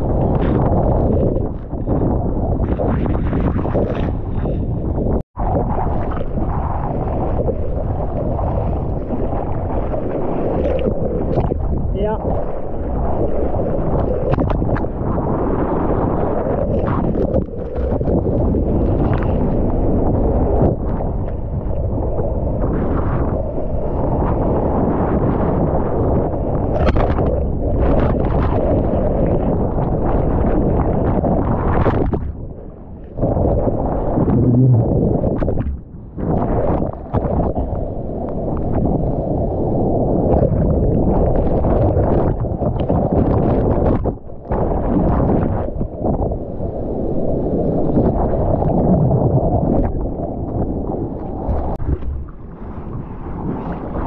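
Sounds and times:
muffled churning whitewater: 0.0s - 54.0s.

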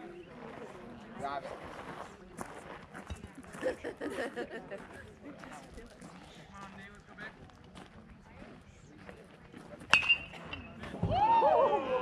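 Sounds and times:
aluminium bat hitting ball: 9.9s - 10.7s
people shouting and cheering: 11.0s - 12.0s.

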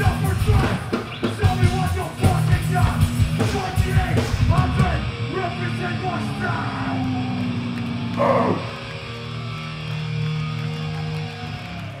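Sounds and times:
punk band playing live: 0.0s - 11.8s
distorted electric guitars: 0.0s - 12.0s.

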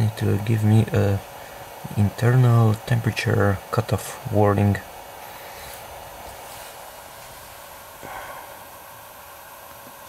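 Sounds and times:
breath close to microphone: 5.2s - 5.9s, 8.0s - 8.8s.

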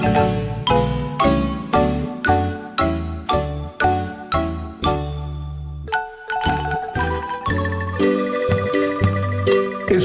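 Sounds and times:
bell-like melody: 0.0s - 10.0s.

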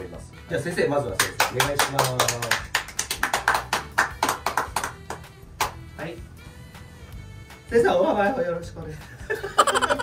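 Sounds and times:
people clapping: 1.1s - 5.8s.

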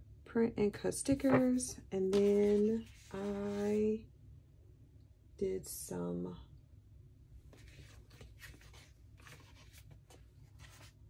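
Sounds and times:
paper rustling and scraping: 1.2s - 3.8s, 7.5s - 11.0s.

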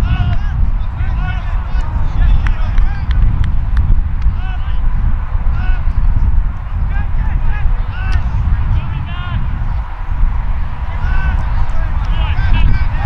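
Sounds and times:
wind rumbling on microphone: 0.0s - 13.0s.

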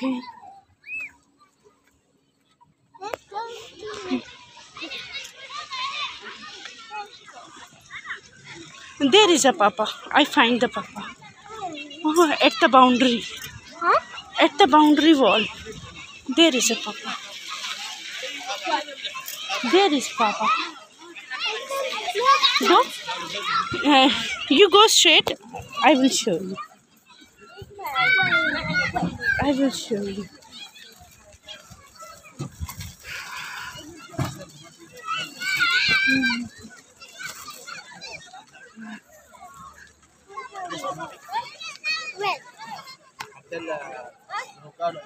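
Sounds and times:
children chattering and calling out: 0.0s - 45.0s.

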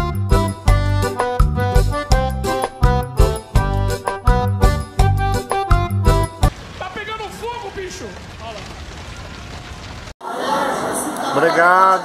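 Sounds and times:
fire rushing with low rumble: 6.5s - 10.2s.

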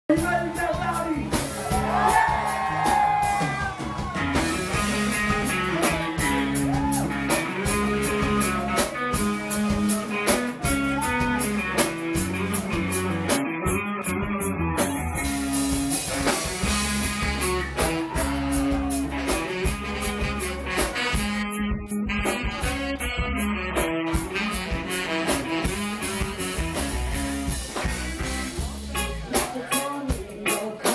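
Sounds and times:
bass: 0.0s - 30.9s
drum kit beat: 0.1s - 30.9s
keyboard: 0.1s - 30.9s
electric guitar: 0.2s - 30.9s
saxophone: 1.7s - 28.6s.

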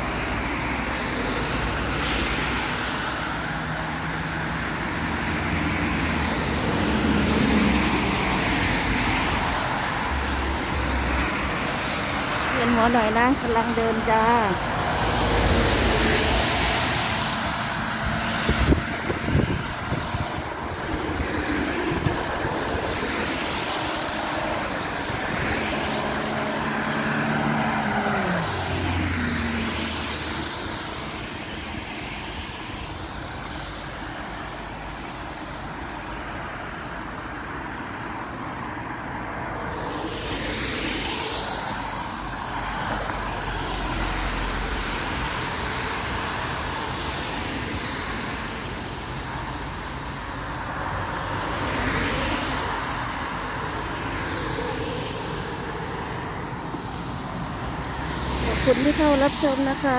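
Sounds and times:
vehicle engine passing by: 23.9s - 30.5s
traffic hiss: 39.4s - 50.9s.

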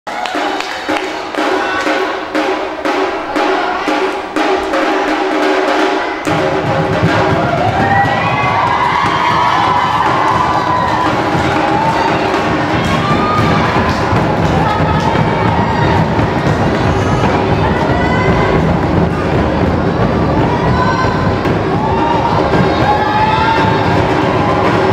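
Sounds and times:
sharp percussion strikes: 0.1s - 24.9s
deep barrel drums rolling: 1.4s - 24.9s.

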